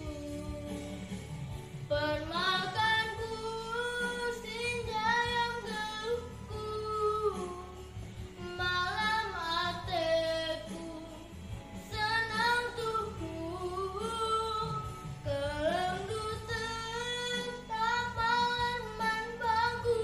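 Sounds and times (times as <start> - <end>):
girl singing: 0.0 - 1.1, 1.9 - 20.0.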